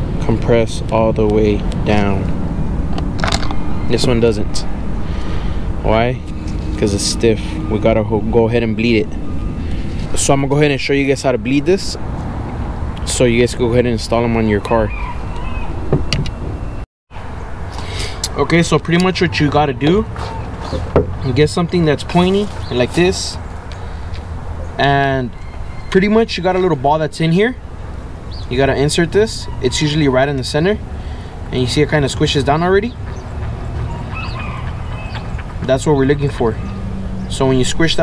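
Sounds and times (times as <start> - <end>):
low outdoor rumble: 0.0 - 14.9, 17.2 - 38.0.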